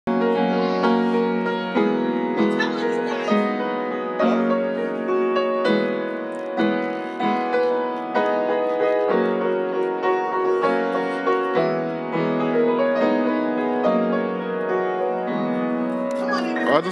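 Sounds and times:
upright piano chords: 0.1s - 16.9s.

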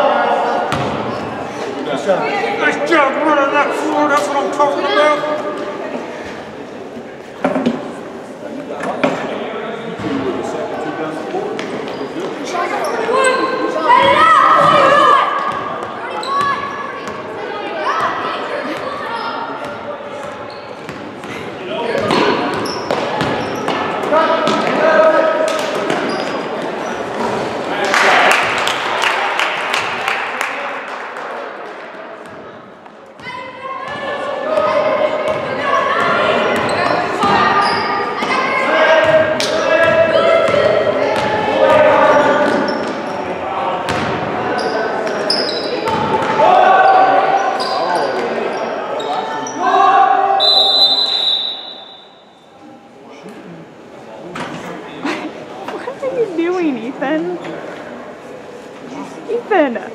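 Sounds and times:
basketball bouncing: 0.7s - 1.0s, 43.9s - 44.1s
referee's whistle: 50.4s - 52.5s.

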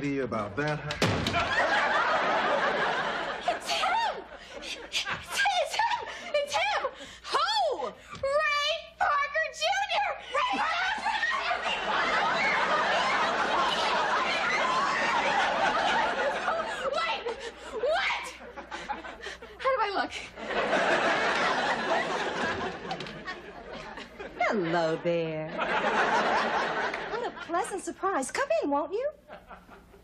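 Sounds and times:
studio audience laughing: 0.7s - 6.2s, 10.6s - 19.5s, 20.4s - 27.6s, 29.3s - 30.0s.

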